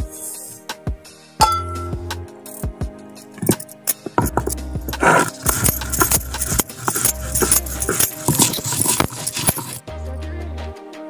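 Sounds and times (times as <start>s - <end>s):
background music: 0.0s - 11.0s
stone grinding on stone slab: 3.4s - 9.8s.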